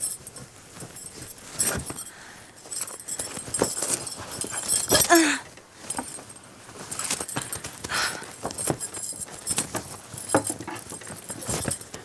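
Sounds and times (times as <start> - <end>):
rustling of bedding and clothes: 0.0 - 12.0.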